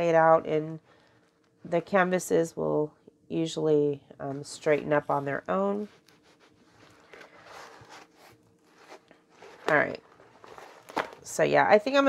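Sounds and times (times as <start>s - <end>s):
canvas rustling and scraping: 4.6s - 11.4s.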